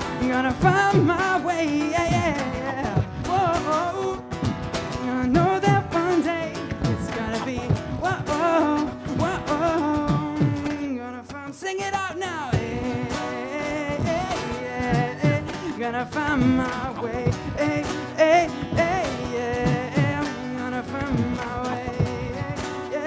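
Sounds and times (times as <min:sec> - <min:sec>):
person singing: 0:00.0 - 0:23.0
strummed acoustic guitar: 0:00.0 - 0:23.0.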